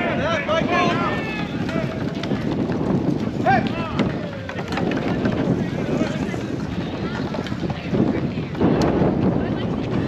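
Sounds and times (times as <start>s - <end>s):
indistinct voices talking: 0.0s - 10.0s
wind rumbling on microphone: 0.0s - 10.0s.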